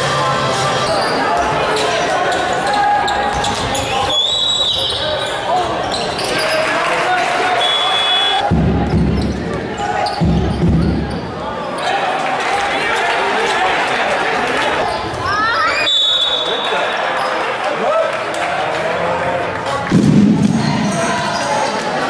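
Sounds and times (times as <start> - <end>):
voices calling out: 0.6 - 8.5
shoes squeaking on court: 0.9 - 6.9.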